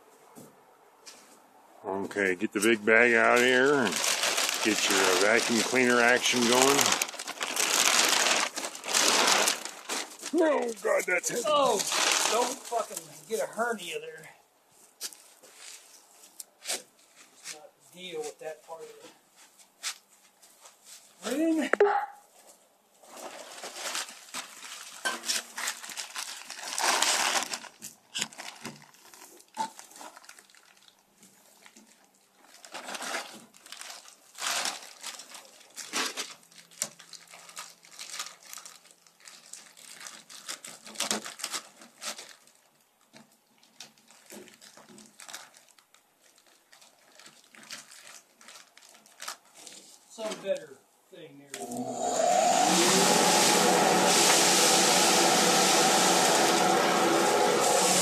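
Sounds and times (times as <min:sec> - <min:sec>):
plastic bag crinkling: 0:02.4 - 0:14.0, 0:23.0 - 0:50.3, 0:53.5 - 0:58.0
foam beads rustling: 0:02.4 - 0:14.3, 0:23.0 - 0:50.3, 0:51.6 - 0:58.0.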